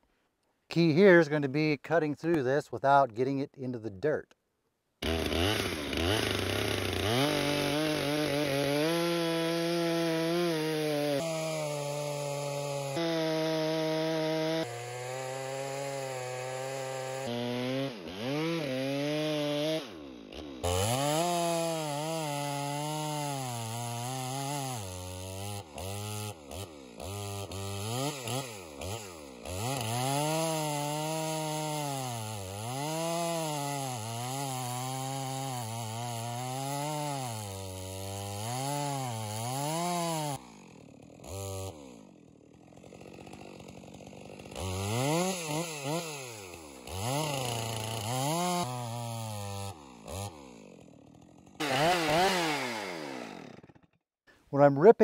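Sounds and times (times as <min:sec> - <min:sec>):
chainsaw cutting log: 0:05.0 - 0:54.0.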